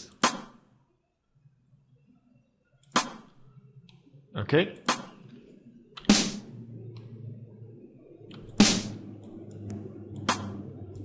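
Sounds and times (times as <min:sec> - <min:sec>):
drum hits: 0:06.0 - 0:06.5, 0:08.6 - 0:09.0.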